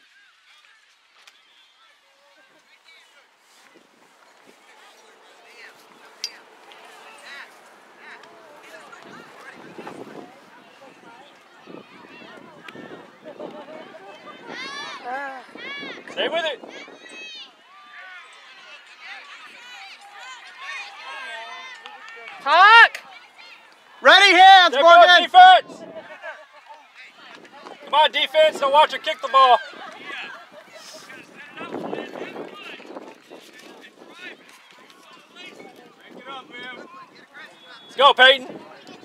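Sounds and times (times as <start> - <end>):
distant voices shouting: 4.4 - 32.8.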